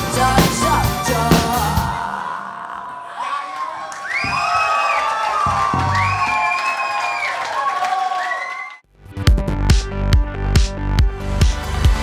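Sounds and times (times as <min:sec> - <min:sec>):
crowd cheering: 0:00.2 - 0:08.8.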